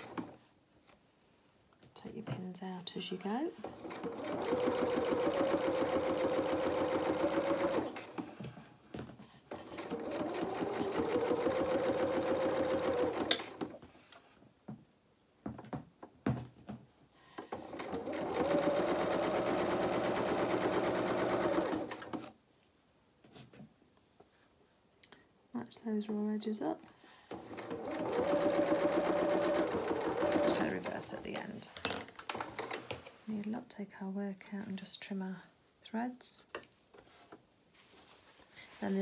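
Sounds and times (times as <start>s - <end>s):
sewing machine motor whine: 27.3s - 30.8s.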